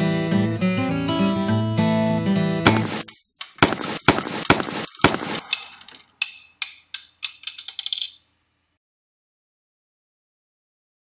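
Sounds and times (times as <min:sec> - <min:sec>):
cartridge case bouncing and tinkling: 0:03.2 - 0:08.2.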